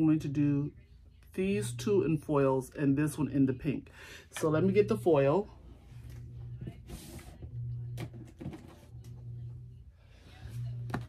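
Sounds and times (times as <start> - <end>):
low hum: 0.1 - 11.0.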